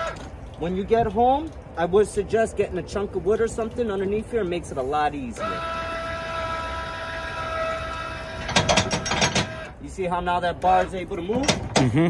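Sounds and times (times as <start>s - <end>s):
electric jack motor humming: 5.4s - 9.8s
metal spring bar rattling: 8.4s - 9.8s, 10.8s - 12.0s.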